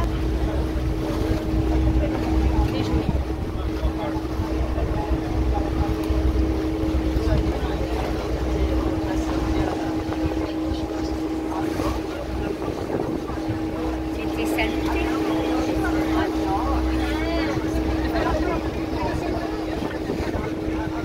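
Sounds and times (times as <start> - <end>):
boat engine running: 0.0 - 21.0
voices chattering: 0.0 - 21.0.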